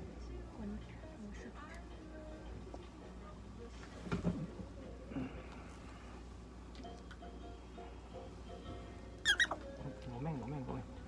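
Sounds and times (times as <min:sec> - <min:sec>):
low room hum: 0:00.0 - 0:11.0
prairie dog squeaking: 0:09.2 - 0:09.7.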